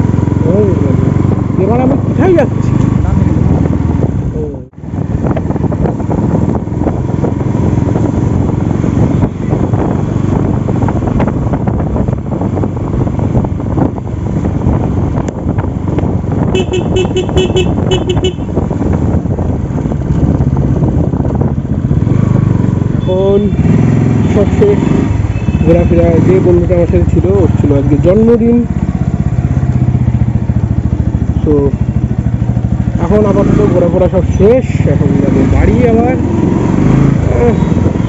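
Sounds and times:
motorcycle engine running: 0.0s - 38.0s
road and wind noise: 0.0s - 38.0s
horn short beeps: 25.3s - 25.8s.

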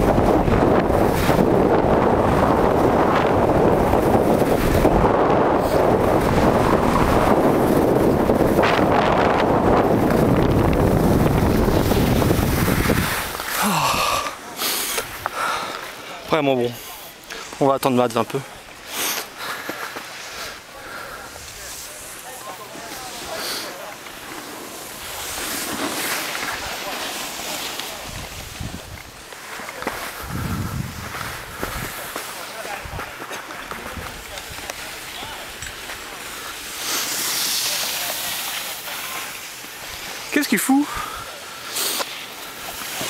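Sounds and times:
wind buffeting microphone: 0.0s - 13.5s, 28.0s - 29.3s, 30.1s - 32.2s.

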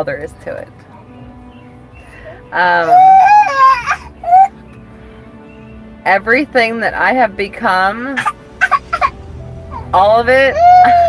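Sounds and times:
young child crying: 2.8s - 4.5s, 9.7s - 11.0s.

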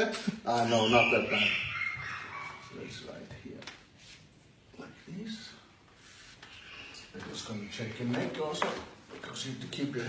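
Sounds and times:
hands rubbing and rustling: 3.1s - 4.6s, 5.8s - 10.0s.

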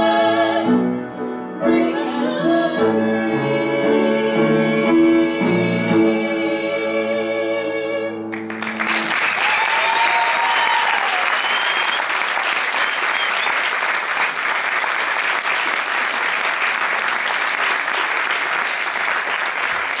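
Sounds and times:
audience applauding: 8.3s - 20.0s
high cheers: 8.5s - 14.3s.

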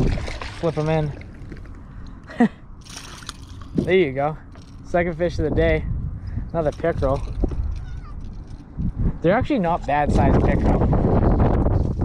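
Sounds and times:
water splashing and dripping: 0.0s - 1.7s.

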